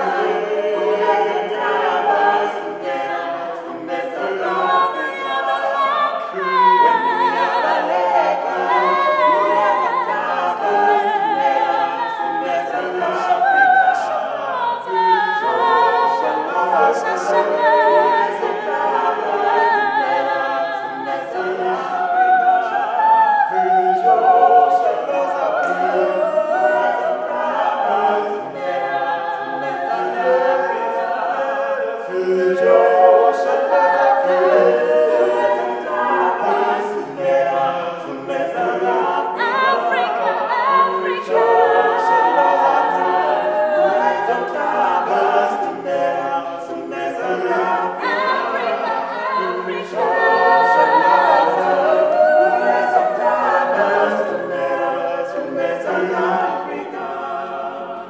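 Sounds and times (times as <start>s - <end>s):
choir singing a cappella: 0.0s - 58.0s.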